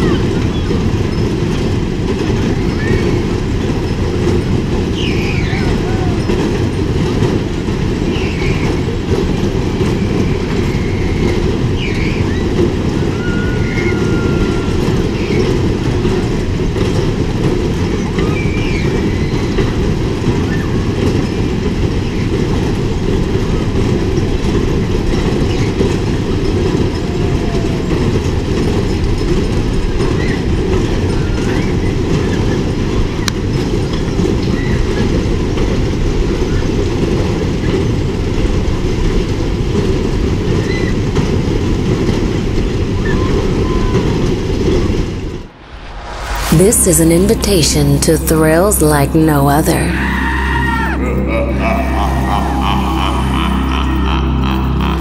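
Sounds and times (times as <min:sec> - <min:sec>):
fairground ride rolling rumble: 0:00.0 - 0:46.9.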